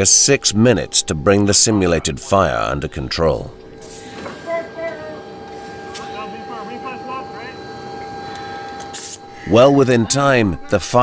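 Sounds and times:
machinery hum: 0:00.0 - 0:11.0.

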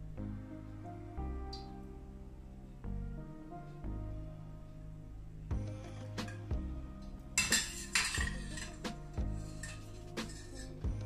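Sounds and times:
background music: 0:00.0 - 0:11.0
spatula scraping metal pans: 0:07.4 - 0:10.8.

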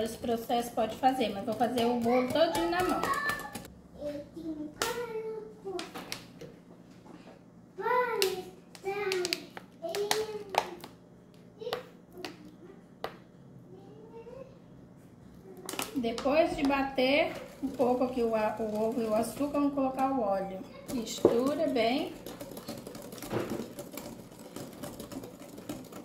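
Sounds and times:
kitchen items clicking: 0:00.0 - 0:03.7, 0:15.7 - 0:26.0.

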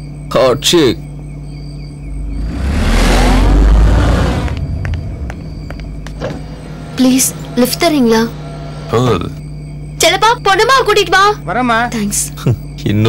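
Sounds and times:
steady low hum: 0:00.0 - 0:13.0
motor vehicle passing by: 0:02.0 - 0:09.7.

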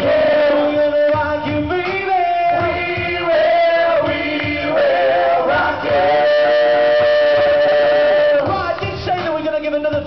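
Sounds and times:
group singing pop song: 0:00.0 - 0:09.1
backing track: 0:00.0 - 0:10.0.

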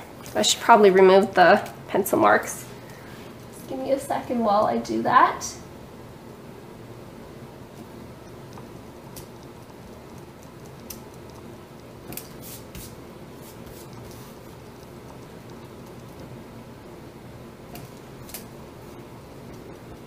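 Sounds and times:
faint room hum: 0:00.0 - 0:20.0
eraser rubbing on cardstock: 0:12.2 - 0:14.4.

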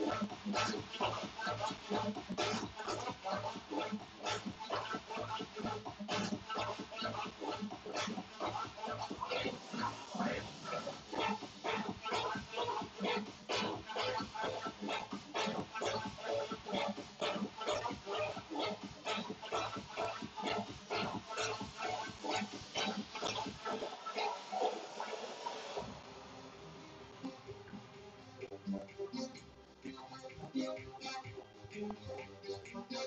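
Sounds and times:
fast bass beat: 0:00.0 - 0:24.0.

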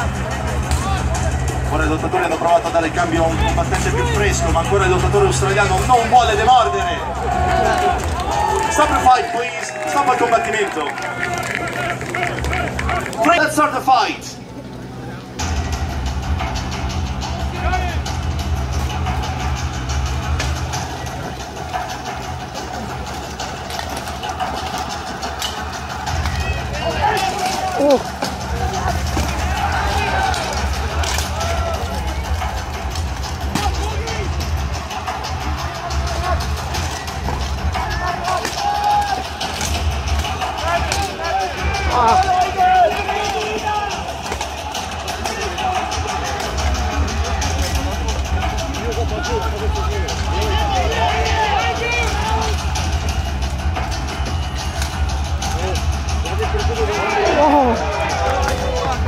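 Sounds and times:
people shouting: 0:00.0 - 0:59.0.

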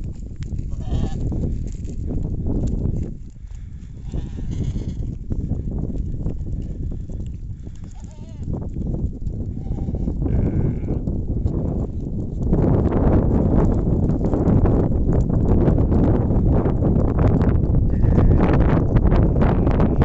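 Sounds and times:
goats bleating: 0:00.7 - 0:01.2, 0:04.0 - 0:05.1, 0:07.9 - 0:08.5, 0:09.5 - 0:11.0, 0:17.9 - 0:18.5.

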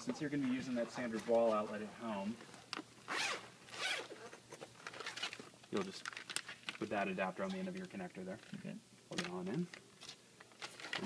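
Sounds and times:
zipper pulled open: 0:03.1 - 0:04.4.

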